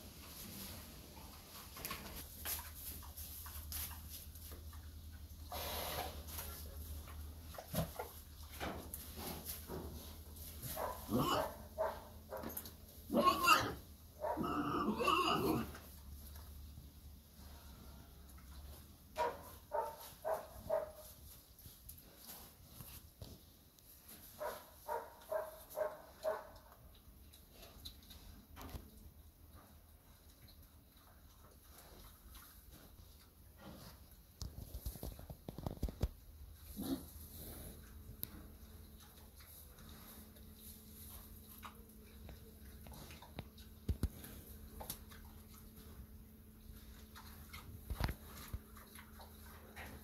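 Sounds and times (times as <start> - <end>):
pigs grunting and snuffling: 1.1 - 16.5, 29.5 - 50.0.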